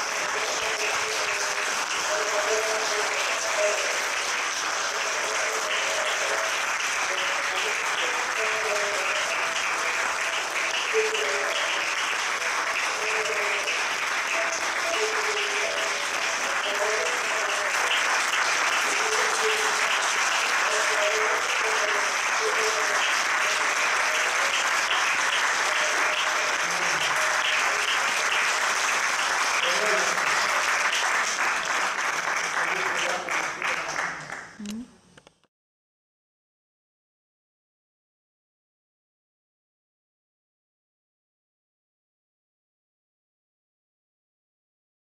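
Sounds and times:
faint voices: 0.0 - 31.5
audience applauding: 0.0 - 34.8.

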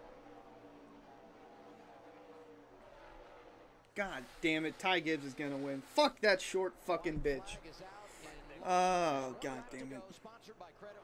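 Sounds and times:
faint race car engines: 0.0 - 5.7.

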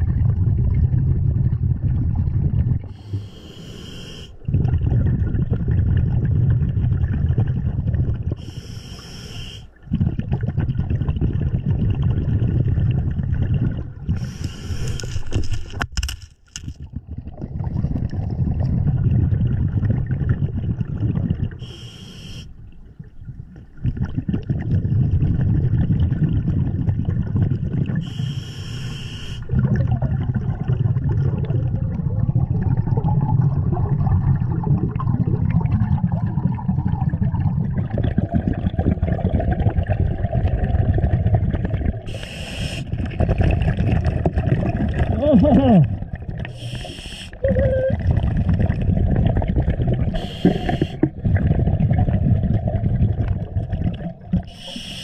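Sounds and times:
exhaled bubbles burbling: 0.0 - 15.8, 16.6 - 55.0
regulator inhale hiss: 2.9 - 4.4, 8.4 - 9.7, 14.2 - 15.1, 21.6 - 22.6, 28.0 - 29.5, 42.1 - 42.9, 46.5 - 47.4, 50.2 - 51.0, 54.5 - 55.0.

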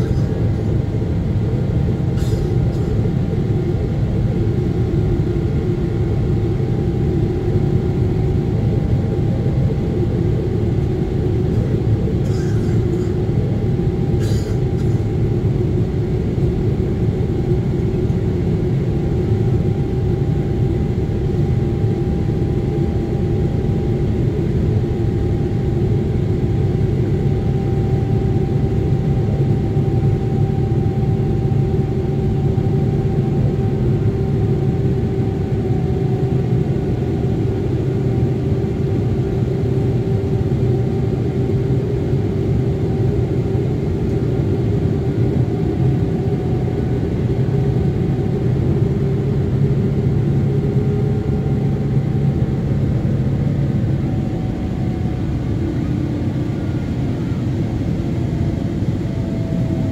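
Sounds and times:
airplane cabin rumble: 0.0 - 59.9.

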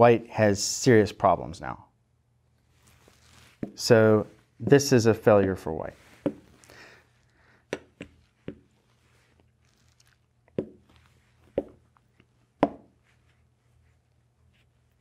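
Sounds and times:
chess pieces knocking on board: 7.7 - 8.7, 10.6 - 10.8, 11.5 - 11.8, 12.6 - 12.9.

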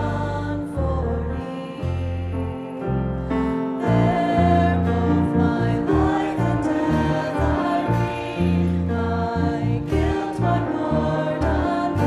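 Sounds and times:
instrumental hymn chords: 0.0 - 12.0.

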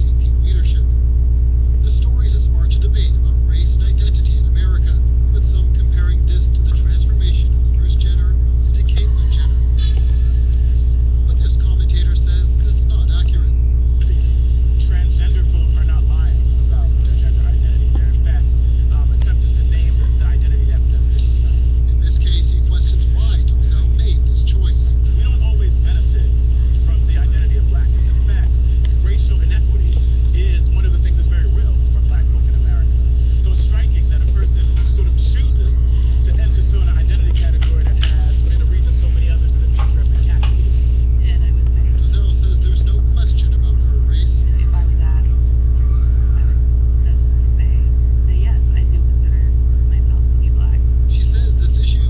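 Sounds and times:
low electrical hum: 0.0 - 52.0
faint muffled speech: 1.8 - 52.0.

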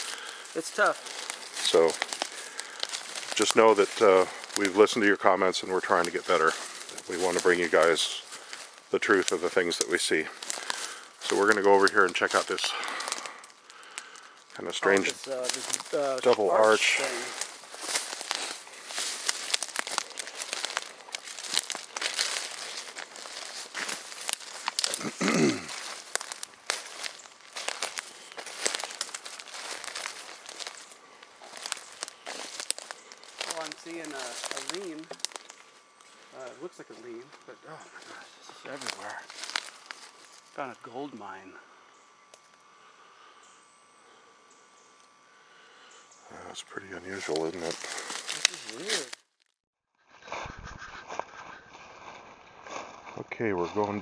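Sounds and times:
footsteps through undergrowth: 0.0 - 41.1, 45.9 - 49.5, 50.9 - 54.0.

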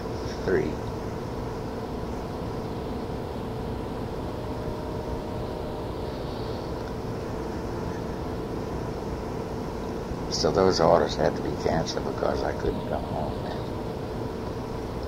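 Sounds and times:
background hum and rumble: 0.0 - 15.0
faint constant tones: 0.0 - 15.0
person speaking: 10.4 - 13.7.

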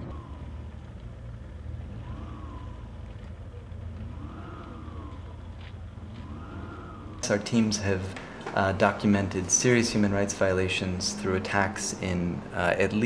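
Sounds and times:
faint rising and falling tone: 0.0 - 13.0
low vehicle engine rumble: 0.0 - 13.0.

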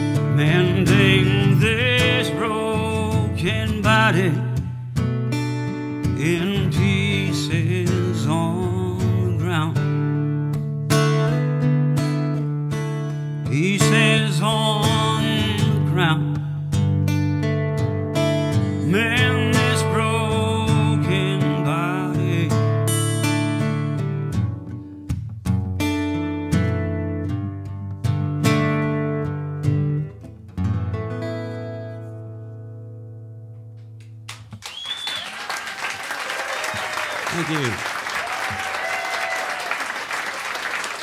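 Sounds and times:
man singing: 0.0 - 4.7, 6.1 - 10.0, 13.4 - 16.6, 18.8 - 22.9
acoustic guitar: 0.0 - 35.2.

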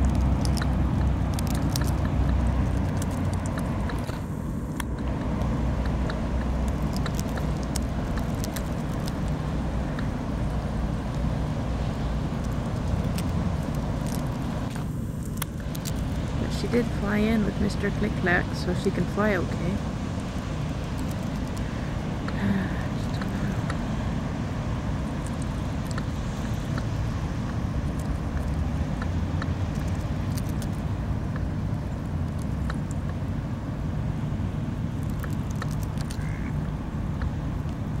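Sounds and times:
faint clicks and ticks: 0.0 - 10.1
steady low rumble: 0.0 - 38.0.

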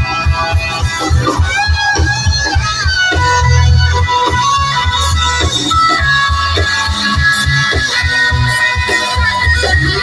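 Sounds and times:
live band music through speakers: 0.0 - 10.0.

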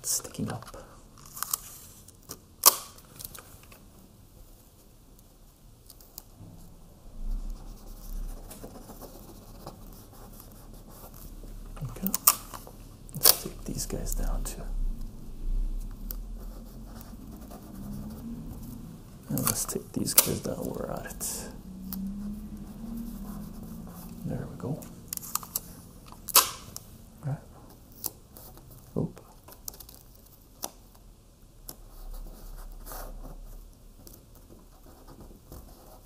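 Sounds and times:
adhesive tape ripping: 1.2 - 3.4, 12.0 - 13.9, 19.2 - 21.2, 25.1 - 26.9.

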